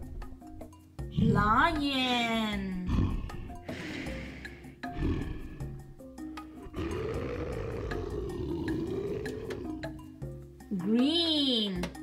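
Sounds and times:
light background music: 0.0 - 12.0
lion roaring: 2.8 - 4.2, 4.9 - 5.9, 6.6 - 10.0.

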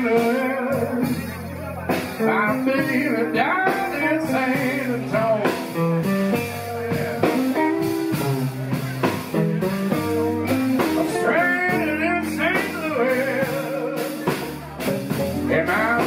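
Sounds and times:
drums: 0.0 - 16.0
electric guitar: 0.0 - 16.0
harmonica bending notes: 2.3 - 14.2.

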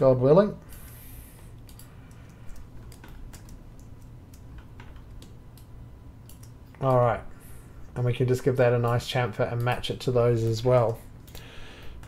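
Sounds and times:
low steady hum: 0.0 - 12.0
mouse and keyboard clicks: 1.6 - 6.8.

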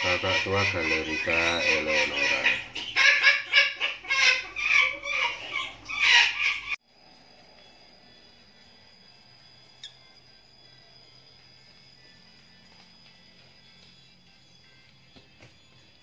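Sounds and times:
cockatoo chick calling: 0.0 - 6.8
faint high whine: 6.8 - 16.0.

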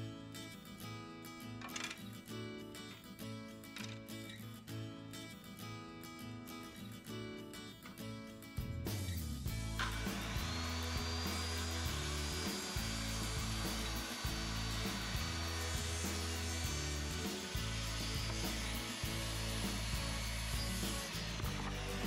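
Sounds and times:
circular saw cutting board: 9.6 - 22.0.

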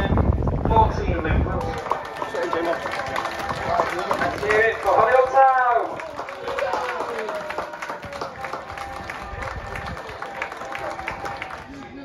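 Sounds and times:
wind rumbling on microphone: 0.0 - 2.2, 8.0 - 12.0.

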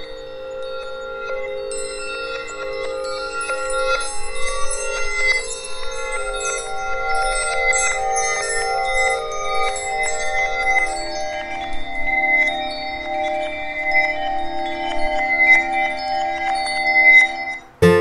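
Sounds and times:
shimmering chime-like tinkles: 0.0 - 18.0
sustained held tones: 0.0 - 18.0.

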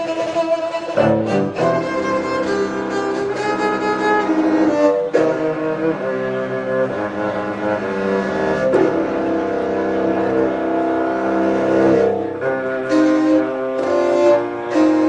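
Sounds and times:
bowed cello and double bass: 0.0 - 15.0.

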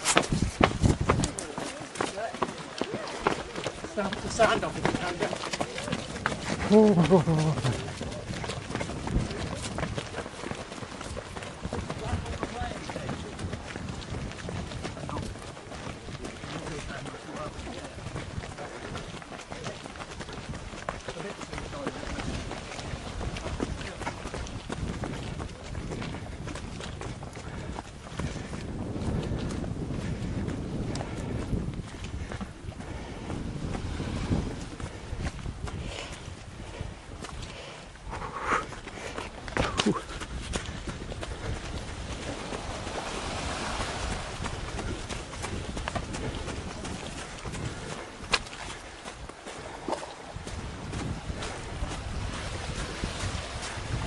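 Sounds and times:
steady rushing noise: 0.0 - 49.8
footsteps on rocky ground: 0.0 - 54.0.

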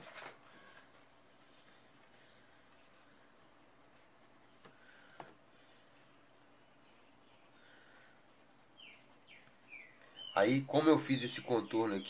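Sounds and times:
pencil scratching on paper: 1.4 - 5.2, 6.3 - 9.9.

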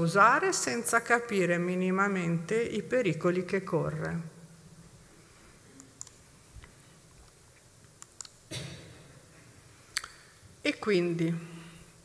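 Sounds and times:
sharp clicks near microphone: 7.9 - 8.8, 10.0 - 10.3.

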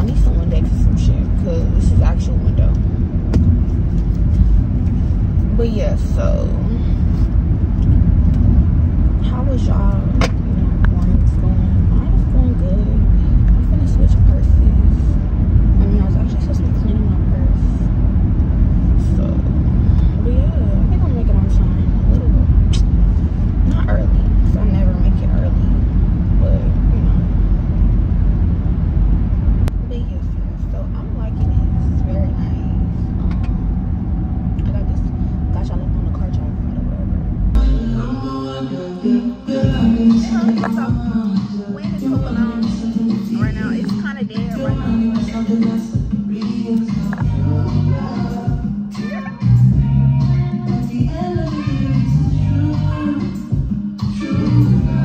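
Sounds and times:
woman talking: 0.0 - 2.9, 5.4 - 7.3, 9.2 - 15.2, 15.8 - 17.9, 18.9 - 22.8, 23.7 - 25.8, 26.4 - 27.2, 29.8 - 33.5, 34.6 - 37.2, 39.8 - 45.8, 49.0 - 49.5
car road and engine rumble: 0.0 - 55.0.

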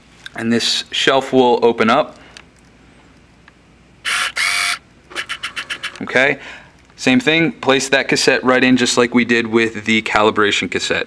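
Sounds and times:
small motor whirring: 4.0 - 6.0.

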